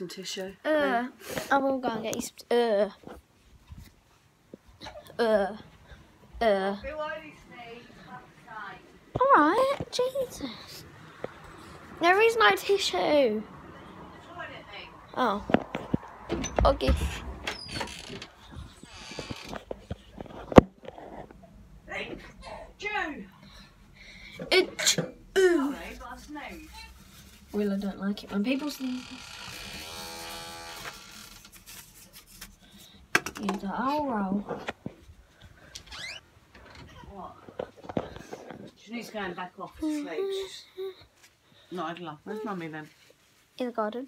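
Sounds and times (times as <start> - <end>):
clicks and creaks: 15.5 - 21.5, 28.8 - 31.8, 35.6 - 38.7.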